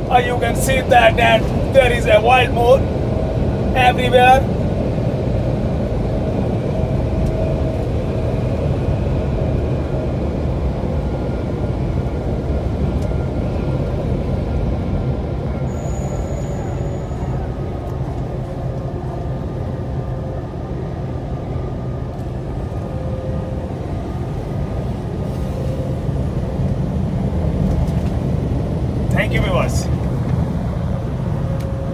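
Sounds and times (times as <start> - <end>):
truck engine and tyre rumble: 0.0 - 31.9.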